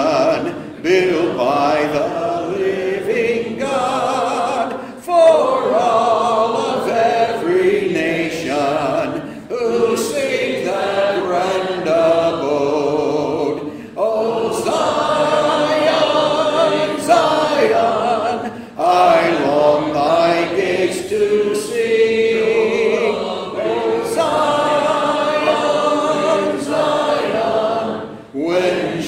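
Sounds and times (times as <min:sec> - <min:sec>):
congregation singing a hymn: 0:00.0 - 0:29.0.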